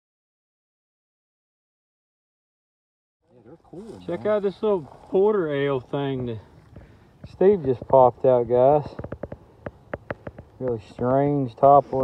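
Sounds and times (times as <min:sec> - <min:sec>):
outdoor background sound: 0:03.2 - 0:12.0
man talking: 0:03.3 - 0:06.6, 0:07.3 - 0:09.0, 0:10.6 - 0:12.0.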